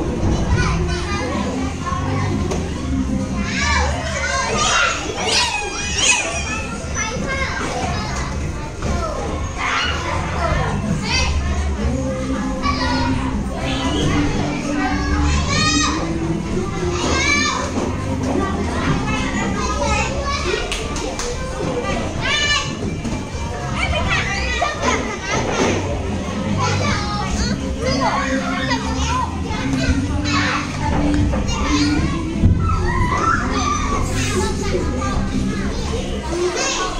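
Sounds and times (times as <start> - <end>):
children chattering and squealing: 0.0 - 36.9
background music: 10.0 - 20.6.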